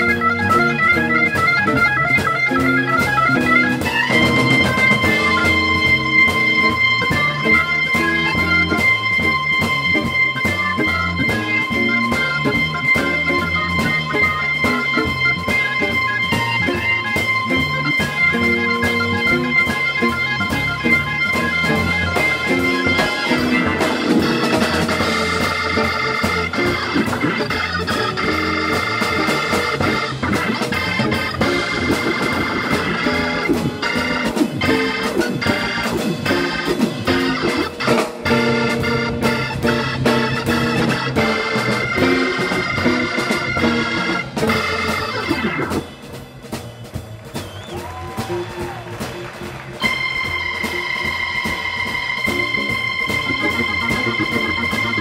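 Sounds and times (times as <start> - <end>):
organ soloing: 0.0 - 55.0
steady drum beat: 0.0 - 55.0.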